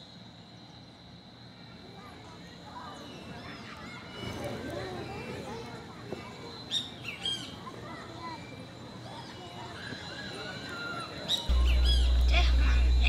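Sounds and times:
birds chirping: 11.5 - 13.0
faint steady high tone: 11.5 - 13.0
loud steady low hum: 11.5 - 13.0.

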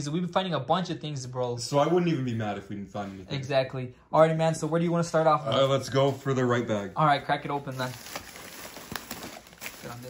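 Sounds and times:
plastic trash bag rustling: 7.3 - 10.0.

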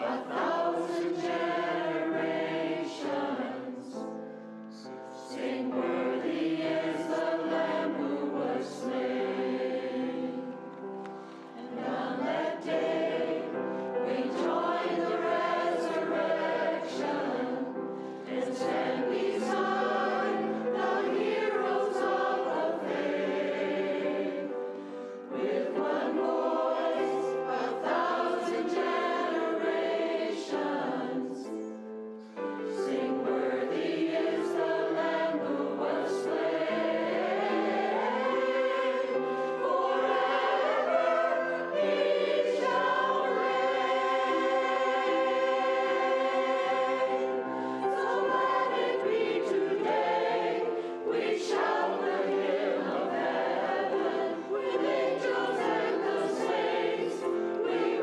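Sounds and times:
choir singing: 0.0 - 58.0
piano accompaniment: 0.0 - 58.0.

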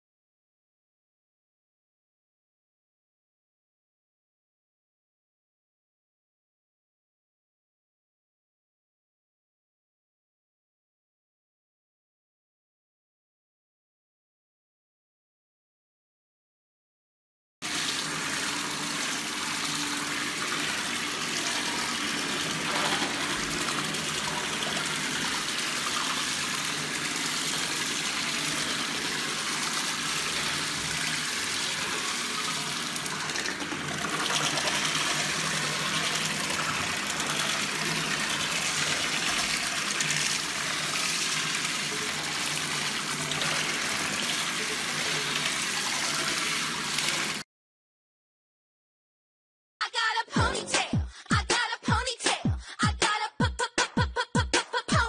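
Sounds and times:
tap water running into sink: 17.6 - 47.4.

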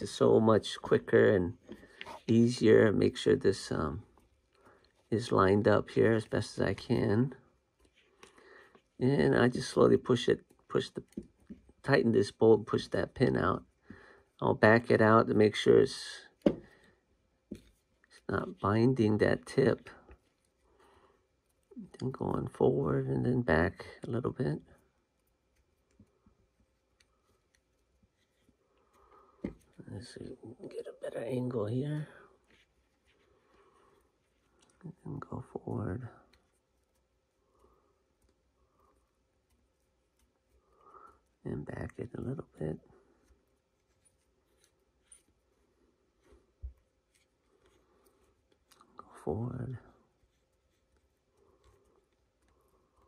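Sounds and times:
light clicks and rubbing: 14.6 - 53.0.

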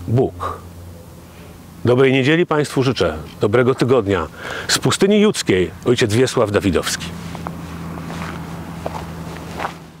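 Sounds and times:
faint hiss: 0.0 - 6.0
steady low hum: 0.0 - 10.0.

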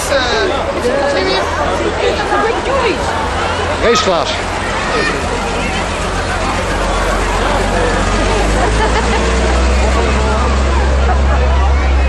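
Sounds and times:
crowd chatter: 0.0 - 12.0
large vehicle engine rumbling: 0.0 - 12.0.

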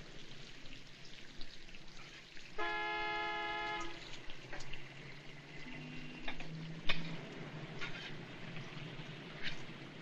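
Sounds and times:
street background noise: 0.0 - 10.0
car horn blast: 2.6 - 4.0.

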